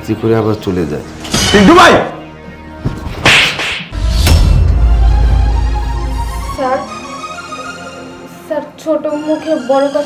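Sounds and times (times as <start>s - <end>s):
hard slap across face: 3.1s - 4.0s.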